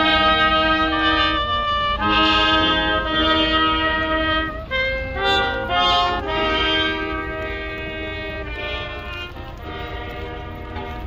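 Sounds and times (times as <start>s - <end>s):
brass band playing slow tune: 0.0s - 11.0s
steady low rumble: 0.0s - 11.0s.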